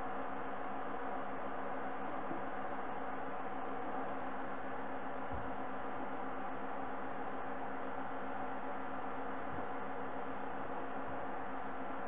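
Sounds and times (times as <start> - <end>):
steady motor hum with hiss: 0.0 - 12.0.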